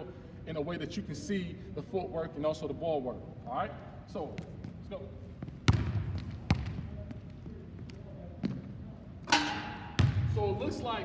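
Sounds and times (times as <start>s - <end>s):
basketball bouncing on hardwood floor: 5.4s - 6.9s, 10.0s - 10.3s
loud impact with ringing: 9.3s - 10.2s.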